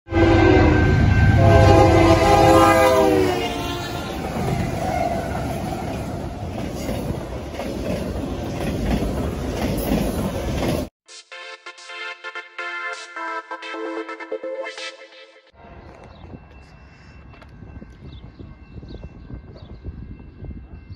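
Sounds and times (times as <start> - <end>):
locomotive air horn: 0.1 - 4.3
train cars rumbling and rattling: 0.2 - 10.9, 15.6 - 20.9
electronic music: 11.1 - 16.8.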